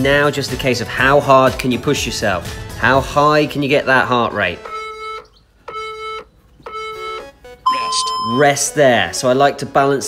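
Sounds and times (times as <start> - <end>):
electronic timer beeps: 4.6 - 8.6.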